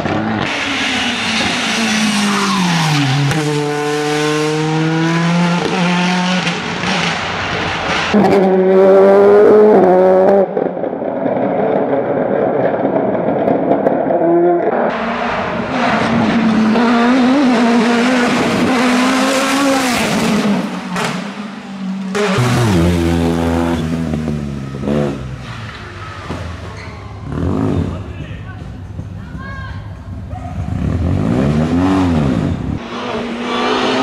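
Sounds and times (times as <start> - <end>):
race car engines revving hard: 0.0 - 29.2, 30.0 - 34.0.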